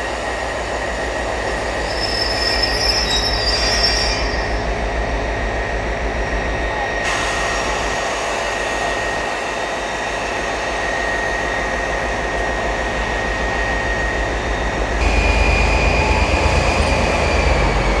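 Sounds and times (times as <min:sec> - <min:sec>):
diesel locomotive engine throbbing: 0:00.0 - 0:18.0
high squeal from train: 0:00.0 - 0:18.0.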